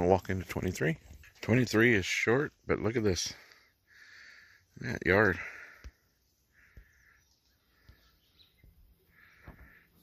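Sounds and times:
faint bird call: 5.6s - 10.0s.

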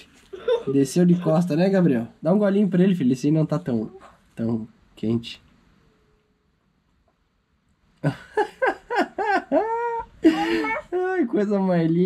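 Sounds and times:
child's high-pitched vocal sounds: 10.3s - 11.0s.

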